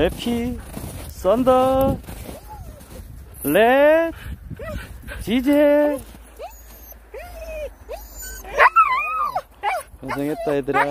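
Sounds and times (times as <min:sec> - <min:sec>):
dogs whining and yipping: 0:02.2 - 0:03.6, 0:04.6 - 0:05.0, 0:06.2 - 0:10.9.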